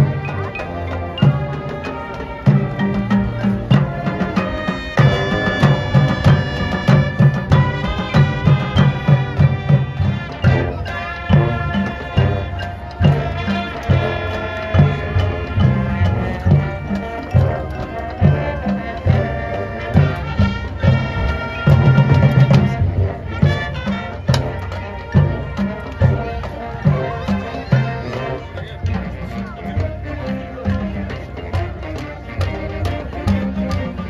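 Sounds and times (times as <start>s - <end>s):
brass and saxophones: 0.0s - 34.0s
bass drum beat: 2.4s - 30.8s.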